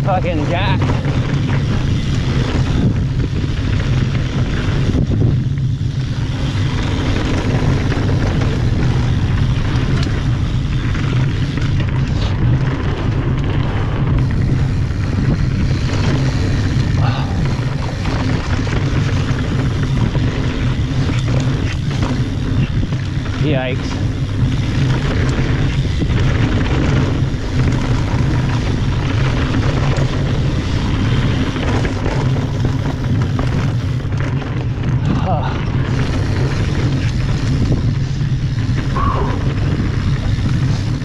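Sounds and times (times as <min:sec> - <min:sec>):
bike rattles: 0:00.0 - 0:41.0
bike tyres rolling on dirt: 0:00.0 - 0:41.0
wind buffeting microphone: 0:00.0 - 0:41.0.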